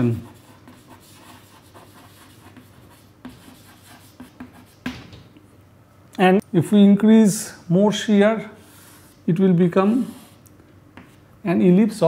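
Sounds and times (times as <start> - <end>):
chalk scratching on chalkboard: 0.0 - 4.9, 9.9 - 10.4
chalk tapping: 0.0 - 5.0.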